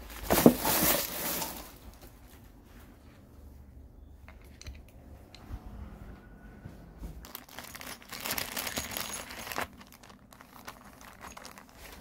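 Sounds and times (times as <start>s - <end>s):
plastic wrapping crinkling: 0.0s - 2.4s, 7.2s - 12.0s.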